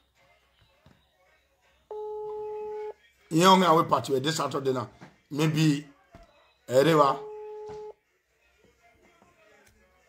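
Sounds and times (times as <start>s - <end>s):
electronic telephone tone: 1.9s - 3.0s, 6.7s - 8.0s.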